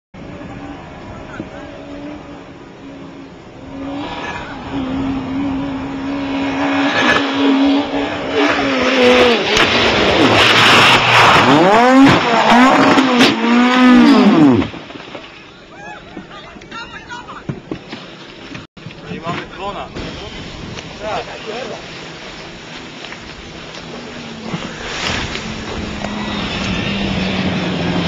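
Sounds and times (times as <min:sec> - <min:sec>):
rally car engine revving: 0:00.2 - 0:14.9, 0:23.7 - 0:28.0
car crashing: 0:08.3 - 0:15.6.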